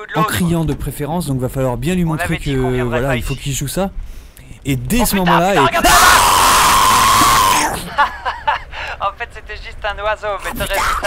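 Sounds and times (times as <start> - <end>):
person screaming in fright: 5.6 - 7.9.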